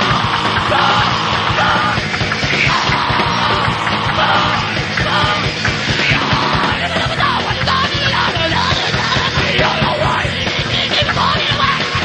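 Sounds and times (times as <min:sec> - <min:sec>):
dense drumming: 0:00.0 - 0:12.0
distorted guitars: 0:00.0 - 0:12.0
shouted vocals: 0:00.0 - 0:12.0.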